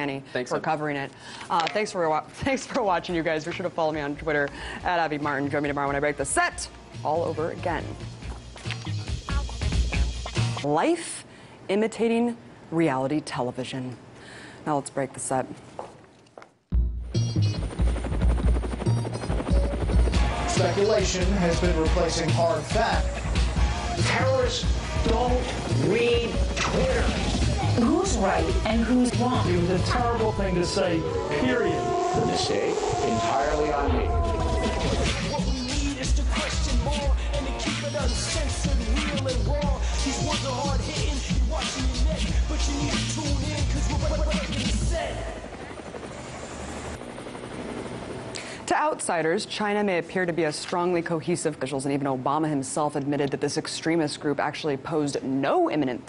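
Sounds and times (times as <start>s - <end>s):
helicopter rotor chopping: 17.6s - 49.2s
music track: 18.6s - 43.8s
deep rumble: 24.7s - 36.3s.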